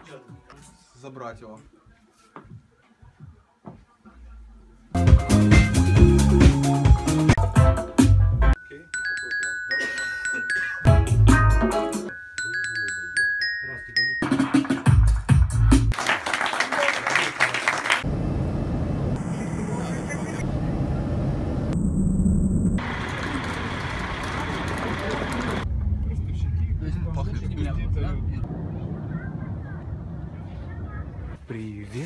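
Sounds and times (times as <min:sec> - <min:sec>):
glockenspiel notes: 0:08.6 - 0:15.0
airliner cabin drone: 0:18.1 - 0:31.3.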